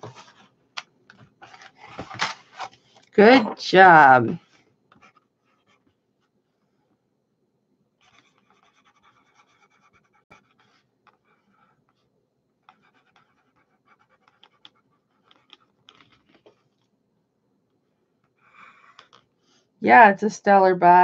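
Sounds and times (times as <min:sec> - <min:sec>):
small objects scratching and clicking: 0:14.0 - 0:16.5.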